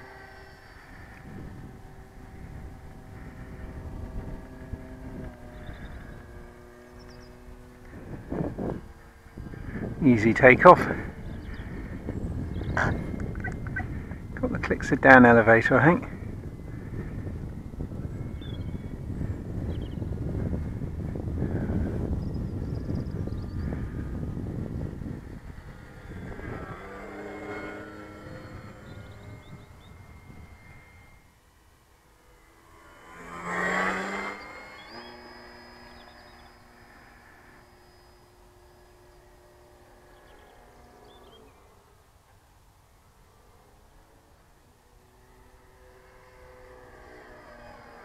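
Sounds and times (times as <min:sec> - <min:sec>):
model plane motor droning: 0:00.0 - 0:48.0
wind rumble on microphone: 0:00.0 - 0:48.0.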